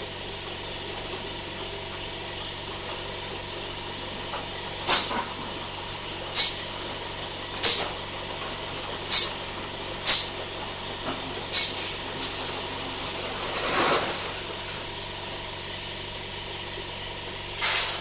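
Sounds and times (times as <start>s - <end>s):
compressed air hisses: 6.4s - 6.6s, 7.6s - 7.8s, 9.1s - 9.4s, 10.1s - 10.3s, 11.5s - 12.3s, 17.6s - 18.0s.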